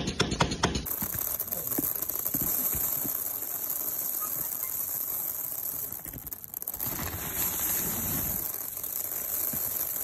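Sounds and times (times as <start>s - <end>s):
pearls clicking and rattling: 0.5s - 10.0s
steady high-pitched hiss: 0.9s - 10.0s.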